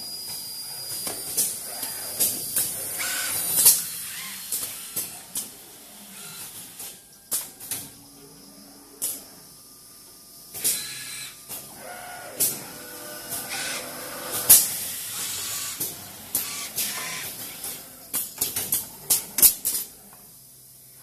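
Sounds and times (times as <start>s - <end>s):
steady machine background: 0.0s - 21.0s
pneumatic air hisses: 0.2s - 7.0s, 10.6s - 11.7s, 13.3s - 17.8s
sharp machine clicks: 13.2s - 18.8s.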